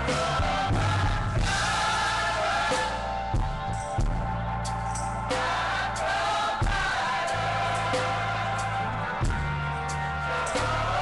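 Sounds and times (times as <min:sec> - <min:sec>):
band accompaniment: 0:00.0 - 0:11.0
gospel choir singing: 0:00.0 - 0:11.0.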